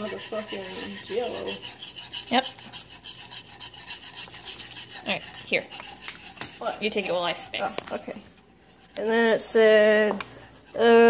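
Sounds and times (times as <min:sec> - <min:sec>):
whisk scraping a pan: 0:00.0 - 0:11.0.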